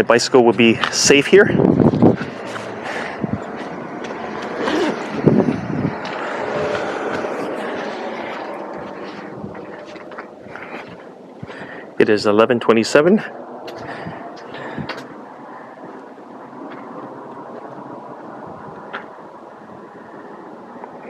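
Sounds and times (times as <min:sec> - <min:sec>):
vehicle passing: 0:01.3 - 0:21.0.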